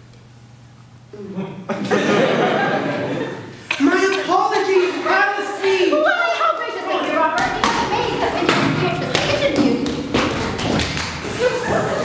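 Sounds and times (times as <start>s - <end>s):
actors' voices: 3.7s - 12.0s
thumps and taps on stage: 7.4s - 11.2s.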